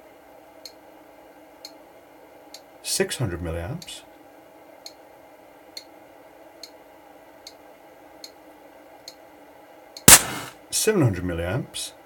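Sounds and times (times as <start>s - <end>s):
cooling fan humming: 0.0s - 10.6s.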